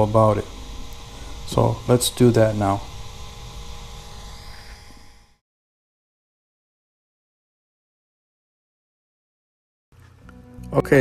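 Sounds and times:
electrical hum with hiss: 0.0s - 5.4s, 10.0s - 11.0s.

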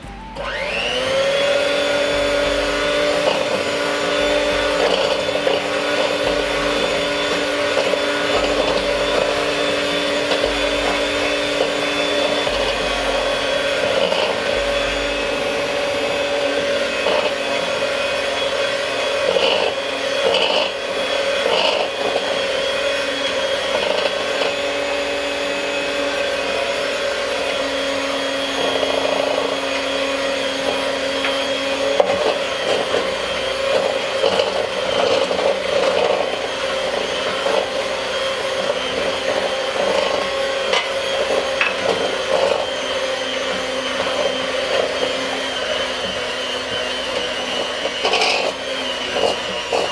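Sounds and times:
electric hand mixer running: 0.0s - 49.9s.

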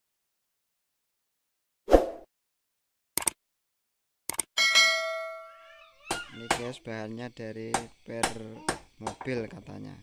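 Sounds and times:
bright bell ding: 4.6s - 5.8s.

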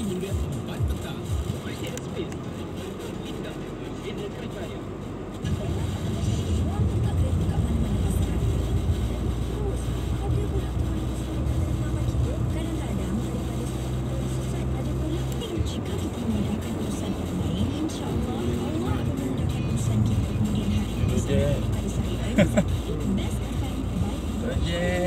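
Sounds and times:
car engine and road drone: 0.0s - 25.0s.

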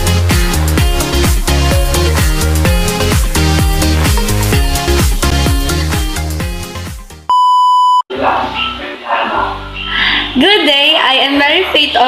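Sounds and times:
electronic dance music: 0.0s - 7.3s
loud electronic beep tone: 7.3s - 8.0s.

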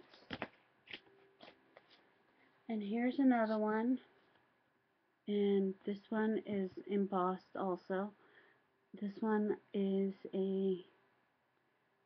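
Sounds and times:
paper cards rustling: 0.0s - 2.1s.

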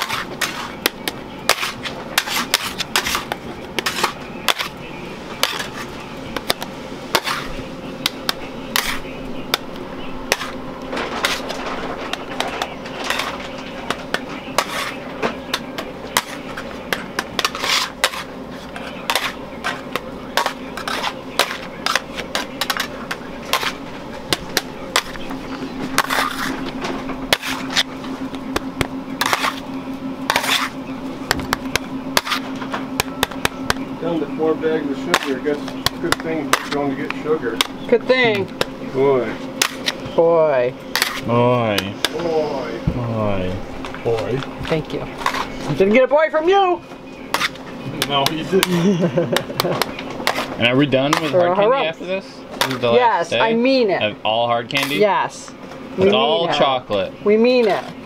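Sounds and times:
steady low hum: 0.0s - 58.0s
metal scrapers on marble: 1.5s - 4.7s, 14.6s - 15.0s, 17.4s - 18.3s, 26.0s - 26.6s, 30.3s - 30.8s, 47.3s - 47.6s.

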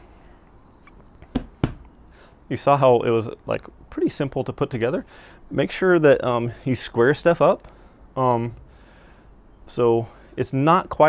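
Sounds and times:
hand knocking on wooden bench: 1.3s - 1.8s.

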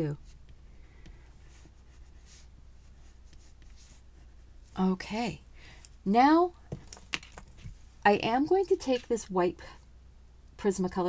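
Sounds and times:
pencil scratching on paper: 0.2s - 4.5s.

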